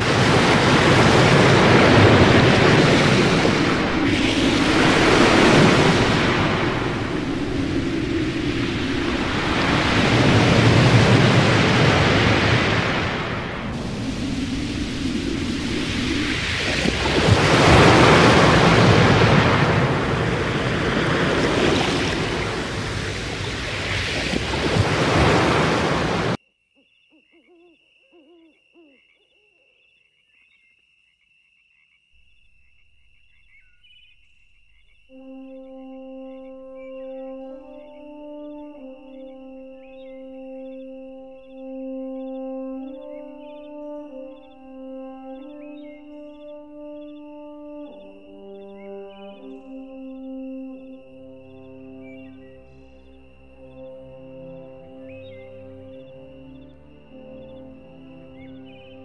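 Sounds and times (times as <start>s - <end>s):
strong wind gusting: 0.0s - 26.4s.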